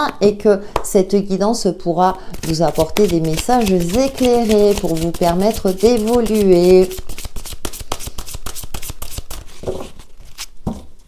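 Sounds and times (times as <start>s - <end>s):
cards being shuffled: 2.3s - 10.6s.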